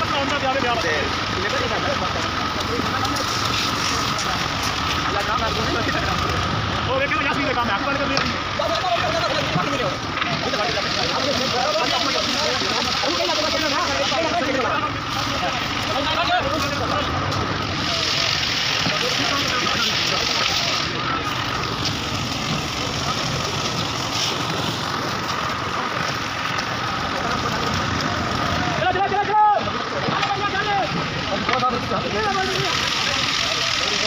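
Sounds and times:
engine humming with thin whine: 0.0s - 34.0s.

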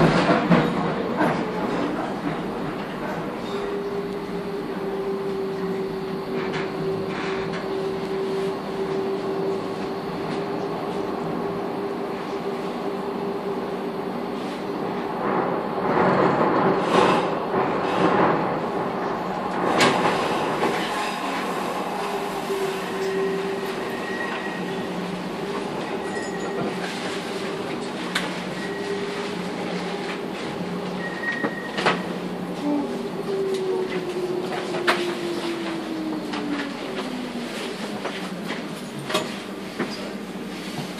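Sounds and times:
train wheels rattling and squealing: 0.0s - 11.1s, 19.7s - 32.2s, 33.5s - 40.4s.

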